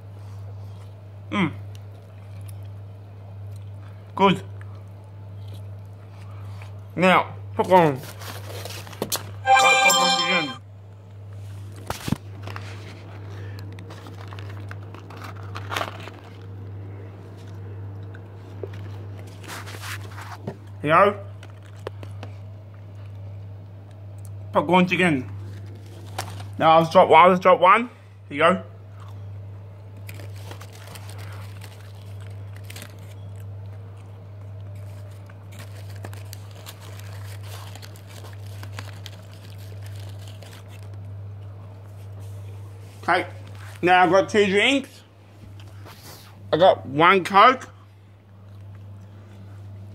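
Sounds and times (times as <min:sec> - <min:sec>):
chewing crispy fried chicken: 0:00.0 - 0:07.0, 0:11.5 - 0:24.5, 0:25.3 - 0:26.6, 0:28.7 - 0:42.8
cardboard scraping and crinkling: 0:13.9 - 0:16.4, 0:19.3 - 0:20.4.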